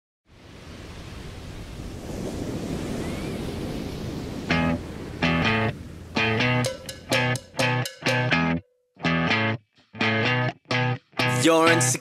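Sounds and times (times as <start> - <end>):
ocean surf rushing: 0.3 - 8.2.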